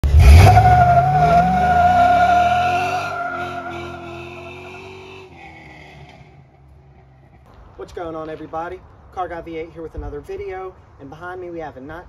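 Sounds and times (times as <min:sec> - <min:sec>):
car engine revving: 0:00.0 - 0:07.4
tyre squealing: 0:00.1 - 0:06.3.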